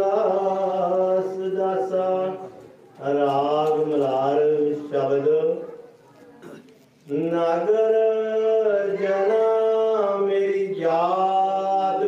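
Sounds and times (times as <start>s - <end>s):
man chanting: 0.0s - 5.8s, 7.1s - 12.0s.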